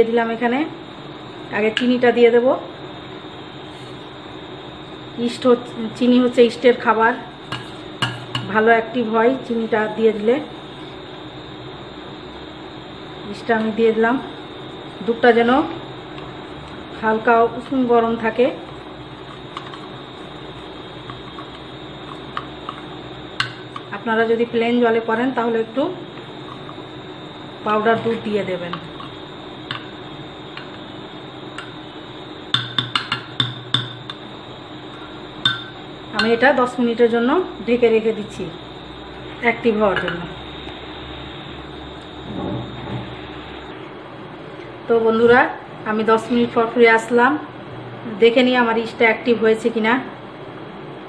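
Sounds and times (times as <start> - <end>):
spoon clinking against mug: 35.4 - 36.3.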